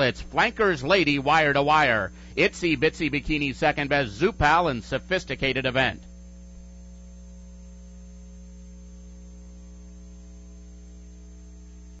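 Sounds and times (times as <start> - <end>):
electrical mains hum: 0.0 - 12.0
thin high whine: 0.0 - 12.0.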